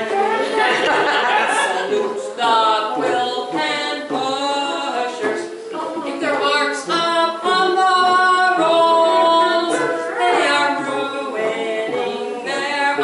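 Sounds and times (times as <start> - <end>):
woman singing unaccompanied: 0.0 - 13.0.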